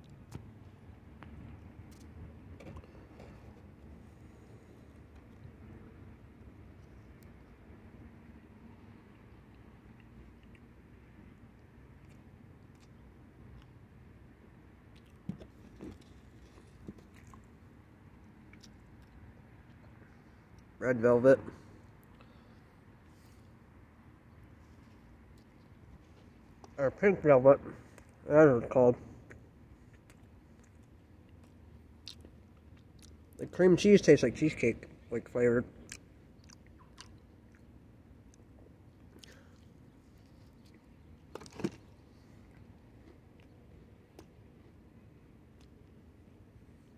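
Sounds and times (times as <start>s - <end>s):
mouth clicks and smacks eating: 9.2s - 13.8s, 14.8s - 17.6s, 18.2s - 20.8s, 29.2s - 33.4s, 35.8s - 41.3s
person chewing: 14.9s - 17.6s, 18.3s - 20.7s, 29.2s - 33.4s, 35.8s - 41.0s.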